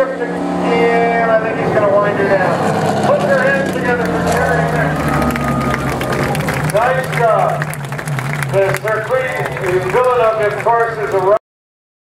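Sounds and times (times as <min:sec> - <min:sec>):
race car engine at speed: 0:00.0 - 0:11.4.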